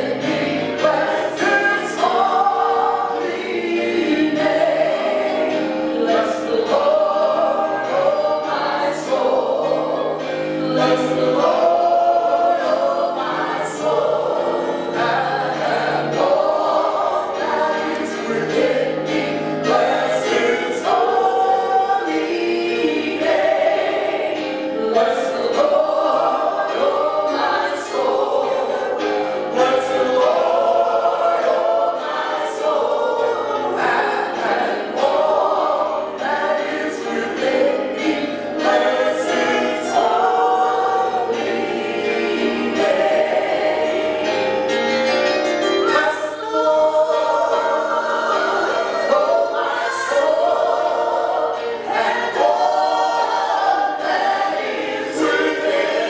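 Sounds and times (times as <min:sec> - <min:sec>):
gospel worship singing: 0:00.0 - 0:56.0
many voices singing along: 0:00.0 - 0:56.0.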